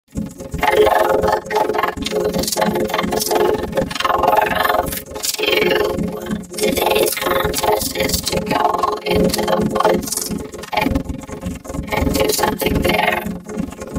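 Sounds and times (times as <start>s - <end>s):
processed cartoon voice: 0.6s - 11.0s, 11.9s - 13.3s.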